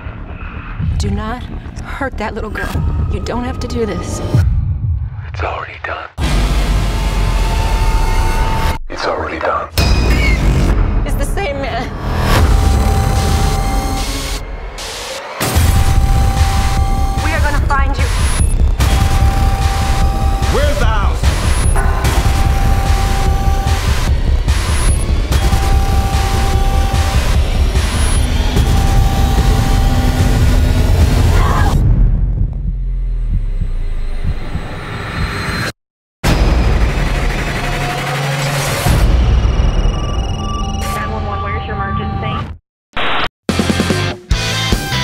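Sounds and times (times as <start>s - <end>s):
low pulse: 12.2s - 35.7s.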